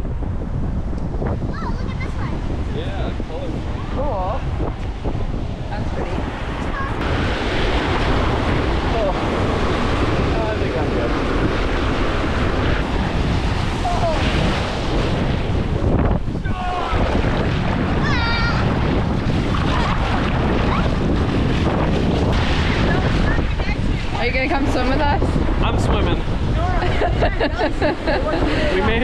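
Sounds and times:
wind rumbling on microphone: 0.0s - 29.0s
small waves breaking: 3.6s - 25.6s.

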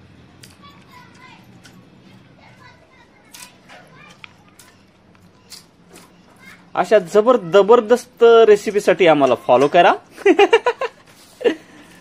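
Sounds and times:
children's voices playing: 0.1s - 11.0s.

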